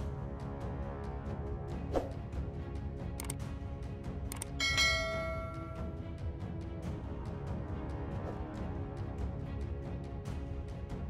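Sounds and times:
background music with steady beat: 0.0s - 11.0s
quick clicks: 3.1s - 3.4s
bright bell chime: 4.6s - 6.0s.

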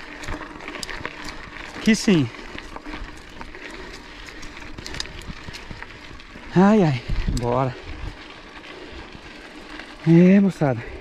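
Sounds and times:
bike tyres on dirt road: 0.0s - 11.0s.

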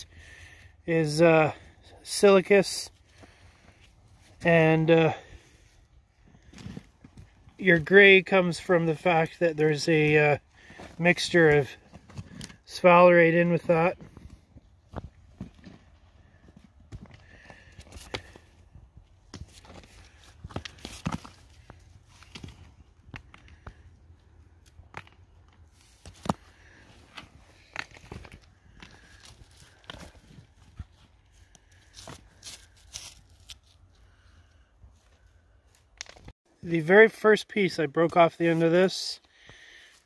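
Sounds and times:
gloved hand scraping rock: 6.3s - 33.6s.

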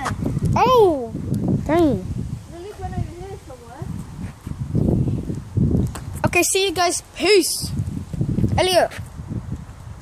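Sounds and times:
low rumbling microphone noise: 0.0s - 10.0s.

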